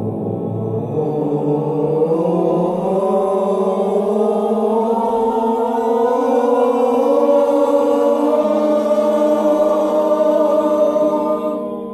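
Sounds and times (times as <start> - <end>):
group of voices sustaining a vowel: 0.0 - 11.9.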